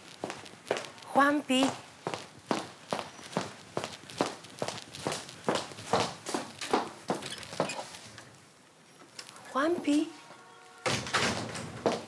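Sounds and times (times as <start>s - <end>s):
footsteps on wooden floor: 1.6s - 8.0s, 11.4s - 12.0s.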